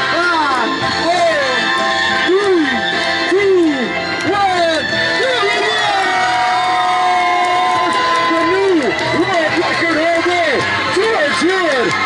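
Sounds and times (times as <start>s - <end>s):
loud music: 0.0s - 12.0s
crowd cheering and whooping: 5.1s - 12.0s.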